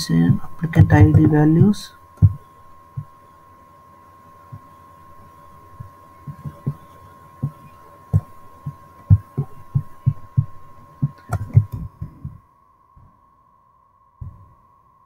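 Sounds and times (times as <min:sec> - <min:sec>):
high-pitched whine: 0:00.0 - 0:15.0.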